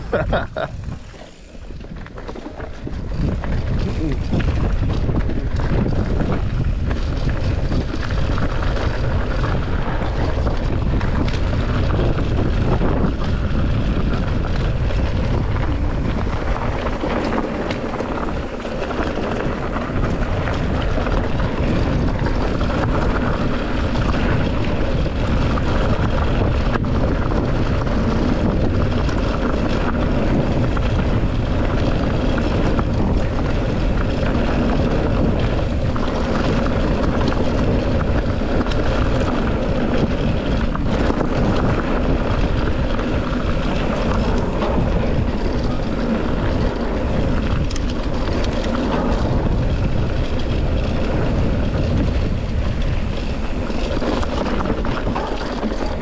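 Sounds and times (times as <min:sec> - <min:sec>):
tyres rolling on dirt: 0:00.0 - 0:56.0
wind rush on microphone: 0:00.0 - 0:56.0
bike knocks and rattles: 0:00.1 - 0:56.0.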